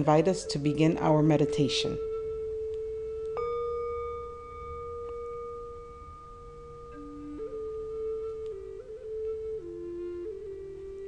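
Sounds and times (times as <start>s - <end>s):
slow flute melody: 0.0s - 11.0s
meditation bell ringing: 3.3s - 8.8s.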